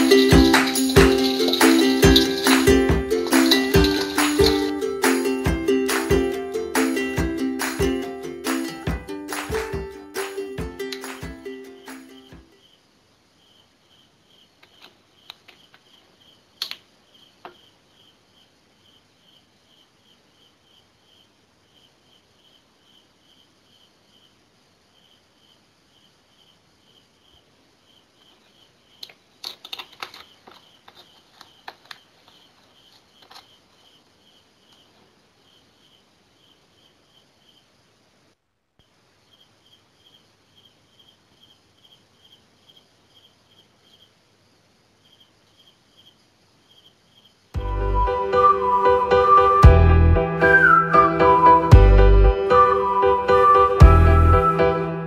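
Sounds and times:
insect chirping: 0.0s - 49.5s
low background hiss: 0.0s - 49.6s.

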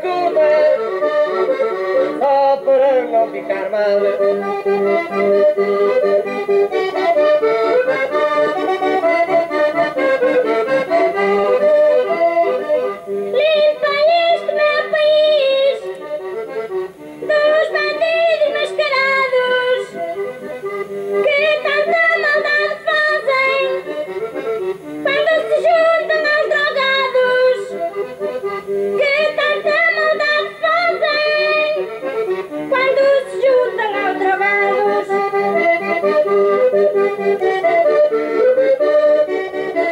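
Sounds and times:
woman singing folk song: 0.0s - 4.4s, 13.3s - 16.4s, 17.2s - 20.5s, 21.2s - 24.4s, 25.0s - 28.1s, 28.9s - 36.0s
accordion: 0.0s - 39.9s.

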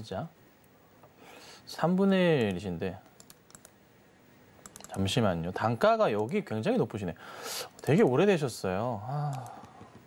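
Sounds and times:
computer keyboard clicking: 2.4s - 3.8s, 4.6s - 5.0s.

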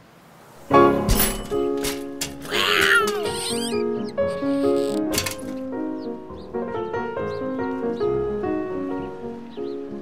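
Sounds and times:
soundtrack music with held notes: 0.6s - 10.0s
cat yowling: 2.4s - 3.9s.

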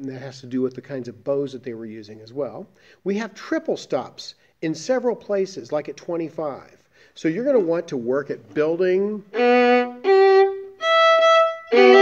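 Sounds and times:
violin bowed notes: 9.2s - 12.0s.

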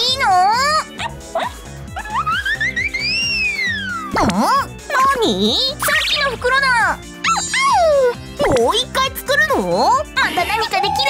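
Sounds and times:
cheerful background music: 0.0s - 11.0s
cartoon whistle sound effect: 2.9s - 4.3s.

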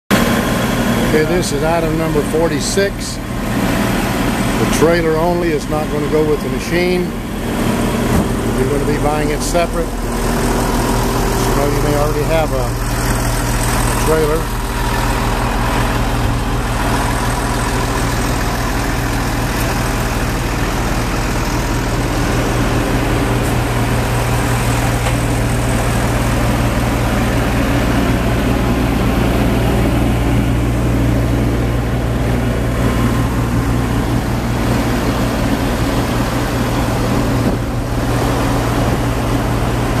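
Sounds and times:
engine idling: 0.1s - 40.0s.

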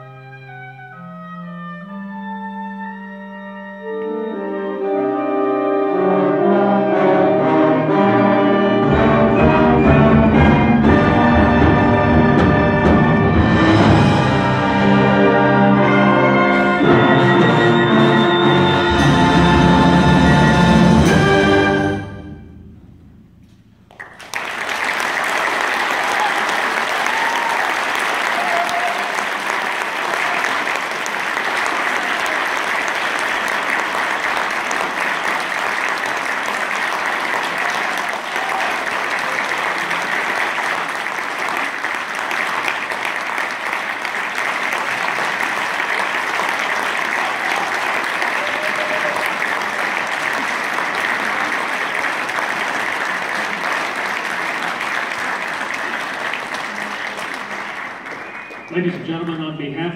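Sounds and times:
concert wind band playing chords: 0.0s - 23.8s
audience applauding: 23.9s - 59.7s.

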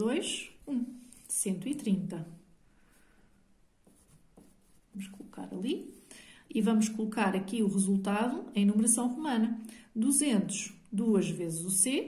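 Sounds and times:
pencil writing on paper: 3.8s - 5.6s.

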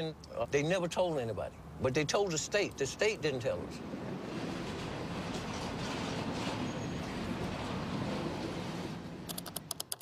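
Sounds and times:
freight train rumble: 3.7s - 9.3s
keyboard keys clicking: 9.3s - 10.0s.

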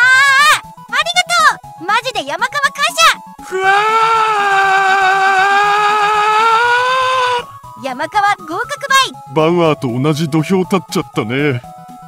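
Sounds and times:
voice holding long cry: 3.4s - 7.6s.

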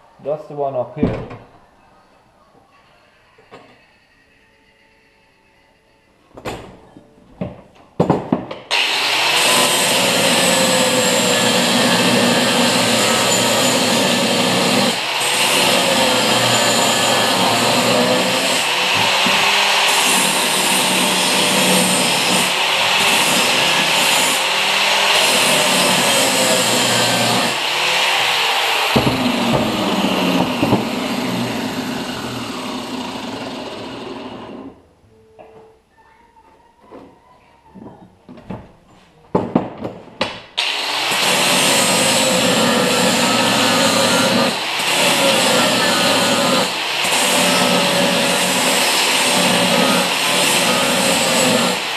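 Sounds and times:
angle grinder on steel: 8.7s - 34.8s, 40.6s - 51.9s.

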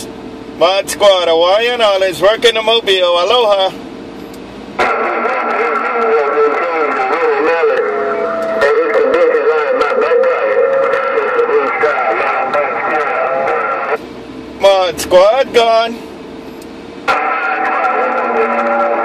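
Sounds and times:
garbled voice over radio: 4.8s - 14.0s, 17.1s - 19.0s
radio whistling tones: 4.8s - 14.0s.

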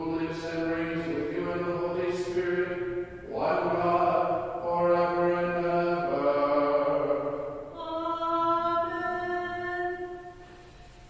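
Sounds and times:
voices chanting long notes: 0.0s - 10.5s.

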